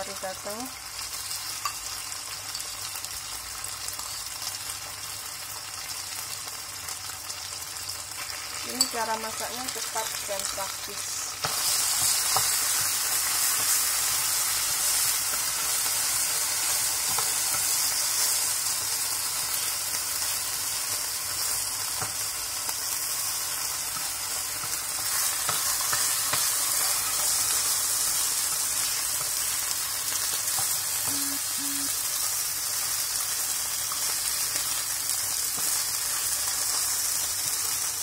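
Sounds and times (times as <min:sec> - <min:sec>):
beef sizzling in hot oil: 0:00.0 - 0:38.0.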